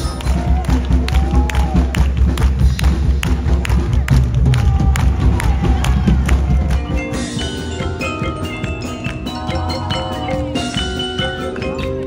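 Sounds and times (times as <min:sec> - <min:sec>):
crowd cheering and shouting: 0:00.0 - 0:02.4, 0:03.8 - 0:12.0
sharp drum and clap hits: 0:00.0 - 0:06.9
marching band percussion: 0:00.0 - 0:12.0.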